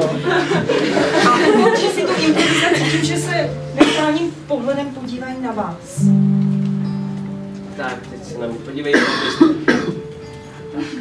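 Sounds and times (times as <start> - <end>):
held music note: 2.7 - 8.7.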